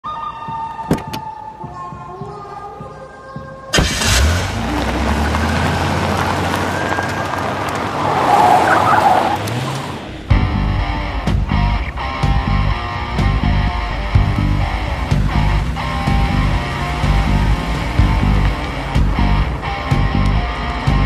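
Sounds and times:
truck engine and tyres on dirt: 0:03.7 - 0:21.0
sustained music notes: 0:10.2 - 0:21.0.

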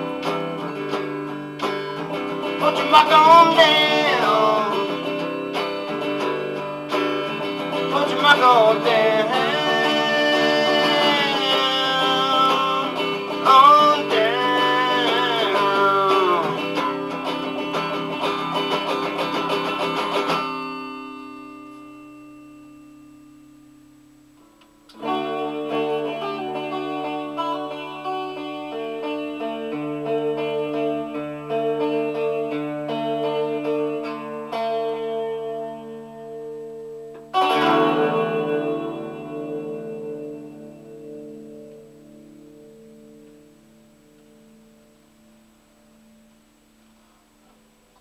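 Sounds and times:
electric guitar chord ringing: 0:00.0 - 0:47.8.

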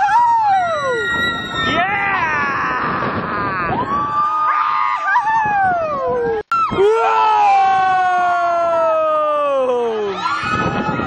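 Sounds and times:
riders screaming: 0:00.0 - 0:06.0.

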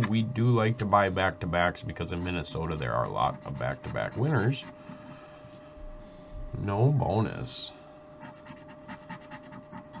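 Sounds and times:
stick scraping scratch-off ticket: 0:02.0 - 0:05.0.

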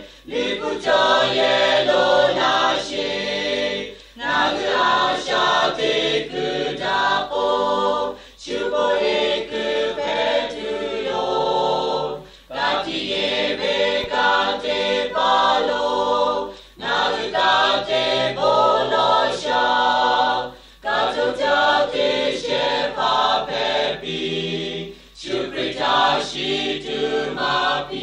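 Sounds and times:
choir singing: 0:00.0 - 0:28.0.

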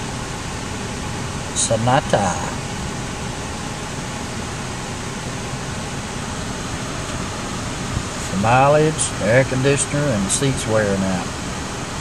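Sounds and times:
air conditioning blower hissing: 0:00.0 - 0:12.0.

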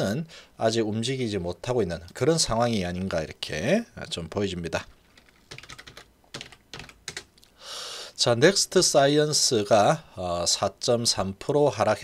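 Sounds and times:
computer keyboard typing: 0:05.0 - 0:07.3.

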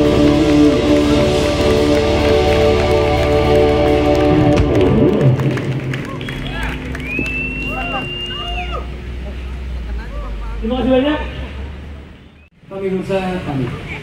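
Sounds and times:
live band playing: 0:00.0 - 0:09.8
audience voices and calls: 0:00.0 - 0:12.2
long high whistle: 0:06.3 - 0:08.9.

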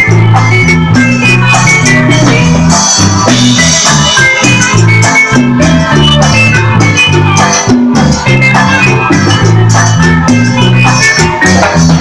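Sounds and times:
bass line: 0:00.0 - 0:12.0
congas: 0:00.0 - 0:12.0
drum kit: 0:00.0 - 0:12.0
electric guitar: 0:00.0 - 0:12.0.

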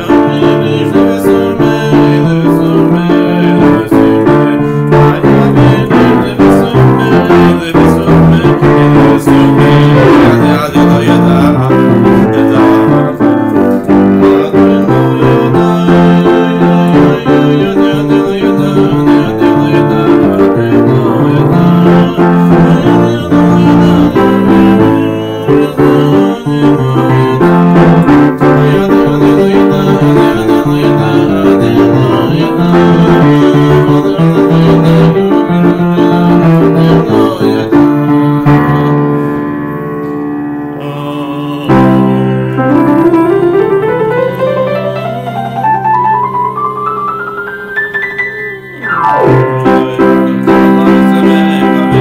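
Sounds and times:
lively solo piano tune: 0:00.0 - 0:52.0.

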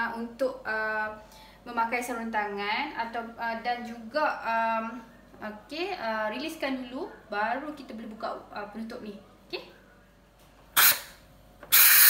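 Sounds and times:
pressure cooker steam hissing: 0:10.8 - 0:11.1, 0:11.7 - 0:12.0.

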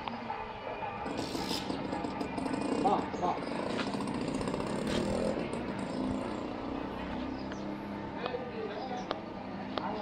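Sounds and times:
small engine buzzing drone: 0:01.0 - 0:07.7.

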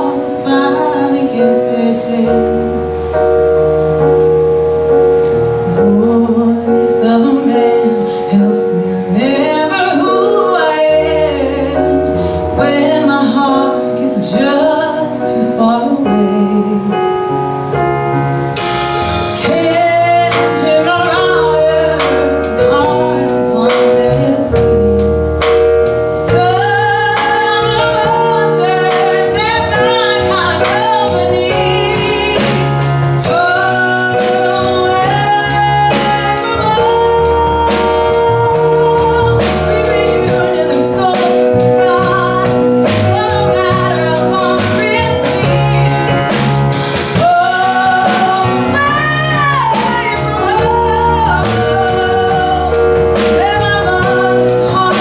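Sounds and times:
woman singing slow song: 0:00.0 - 0:03.4, 0:05.6 - 0:17.5, 0:19.4 - 0:55.0
instrumental accompaniment: 0:00.0 - 0:55.0.

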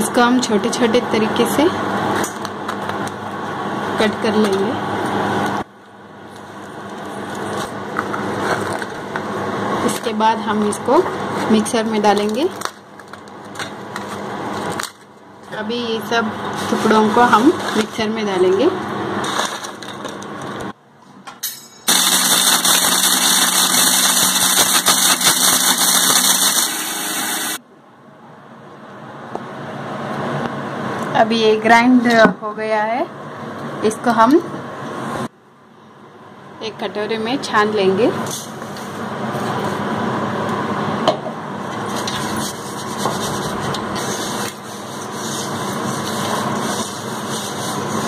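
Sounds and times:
machine hum with rushing air: 0:00.9 - 0:11.6, 0:21.9 - 0:31.4
mixer grinder grinding: 0:21.9 - 0:27.6, 0:41.6 - 0:48.0.

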